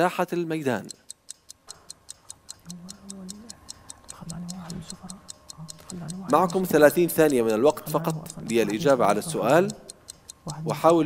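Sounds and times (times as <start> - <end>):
clock-like timer ticking: 0.0 - 11.0.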